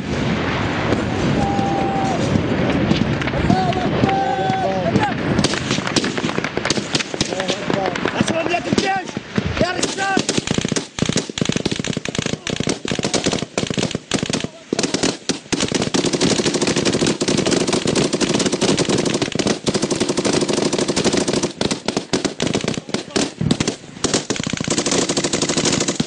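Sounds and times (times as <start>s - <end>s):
automatic gunfire: 5.4s - 26.0s
man shouting: 8.5s - 10.2s.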